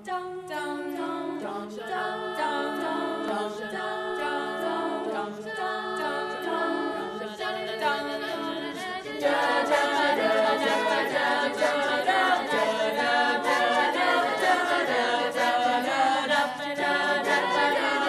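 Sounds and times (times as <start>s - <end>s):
girls choir singing a cappella: 0.0s - 18.0s.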